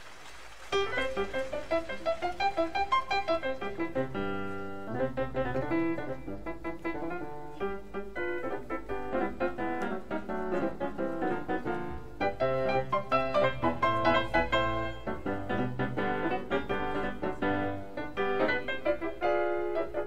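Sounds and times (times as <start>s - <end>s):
jazz piano improvisation: 0.7s - 20.0s.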